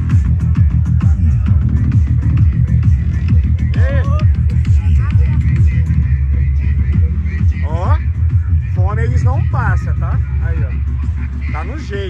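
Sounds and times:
electronic dance music with heavy bass: 0:00.0 - 0:12.0
voices: 0:00.0 - 0:12.0.

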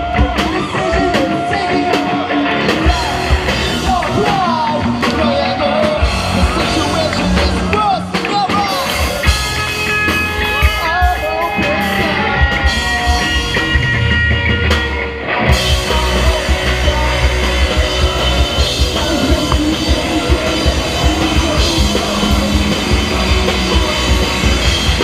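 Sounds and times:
person singing: 0:00.0 - 0:09.3, 0:10.5 - 0:13.6, 0:15.5 - 0:25.0
bass guitar: 0:00.0 - 0:25.0
drums: 0:00.0 - 0:25.0
electric guitar chords: 0:00.0 - 0:25.0.

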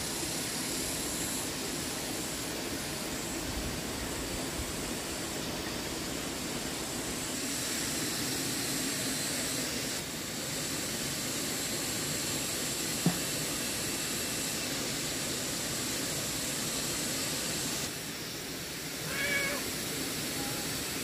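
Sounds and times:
shallow stream flowing: 0:00.0 - 0:11.0
high wavering animal call: 0:19.0 - 0:19.7.

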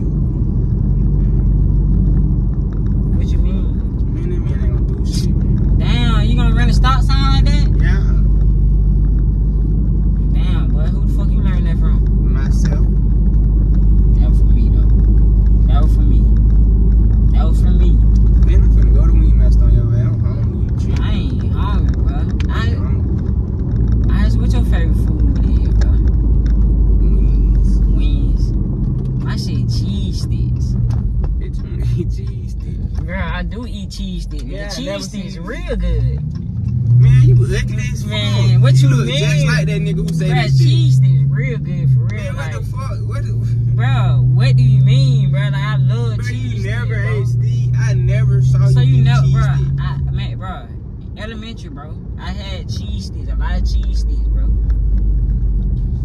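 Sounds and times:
voices in car: 0:00.0 - 0:54.9
car engine and road noise: 0:00.0 - 0:56.0.

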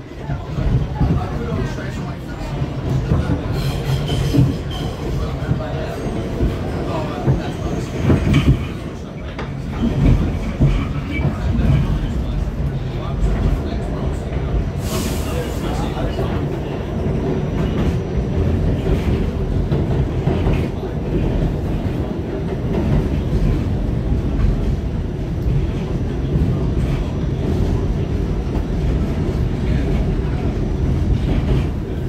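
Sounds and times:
rumble of train wheels on track: 0:00.0 - 0:32.0.

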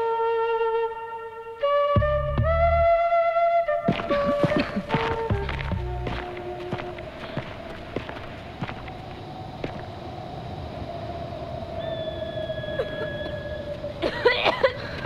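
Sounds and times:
faint background noise: 0:00.0 - 0:15.0.

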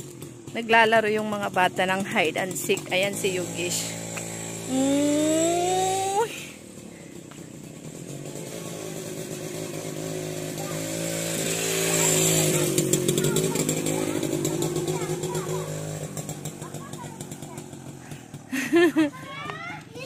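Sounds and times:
small motor vehicle passing: 0:01.5 - 0:20.0.

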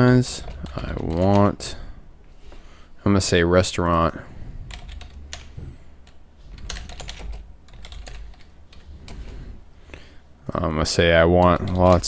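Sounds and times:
keyboard typing clicks: 0:04.7 - 0:09.3.

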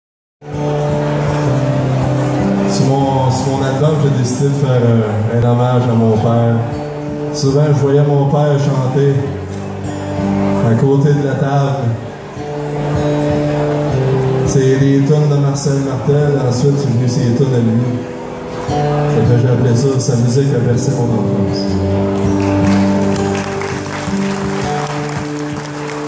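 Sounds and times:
country band playing soft chords: 0:00.4 - 0:26.0.

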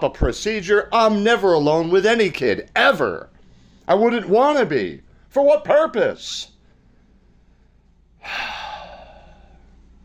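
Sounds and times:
man sighing: 0:08.2 - 0:09.6.

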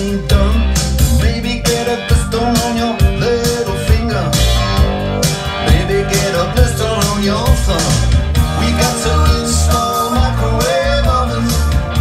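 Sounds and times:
bass line: 0:00.0 - 0:12.0
drum beat: 0:00.0 - 0:12.0
electric guitar melody with bends: 0:00.0 - 0:12.0.

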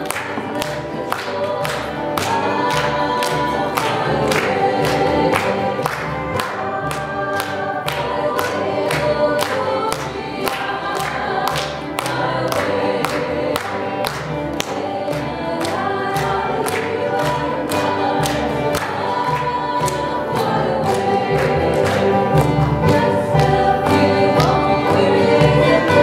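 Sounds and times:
string band playing: 0:00.0 - 0:26.0
voices singing together: 0:00.0 - 0:26.0.

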